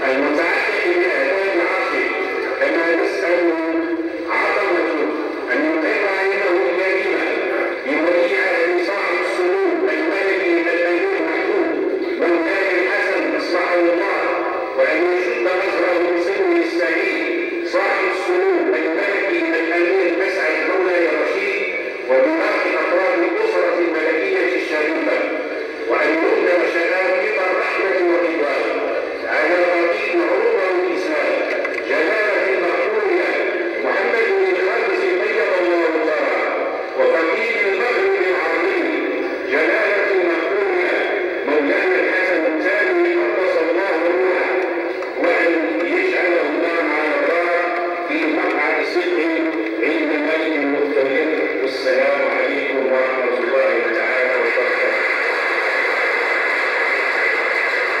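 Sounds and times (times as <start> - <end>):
man chanting into microphone: 0.0 - 55.0.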